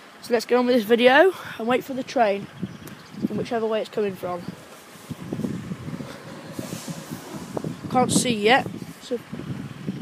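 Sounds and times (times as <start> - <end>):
wind buffeting microphone: 1.8 - 10.0.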